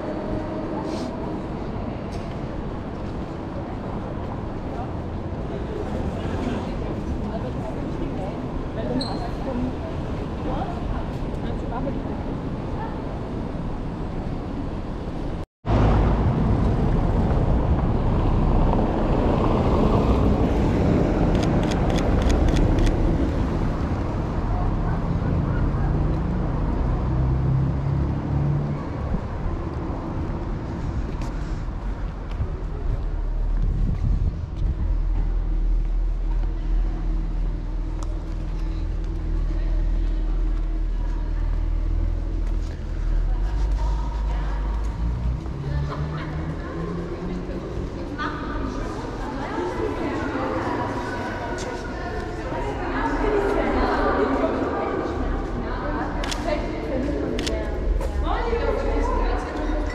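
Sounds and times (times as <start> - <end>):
passers-by: 0.0 - 59.9
street traffic: 0.0 - 59.9.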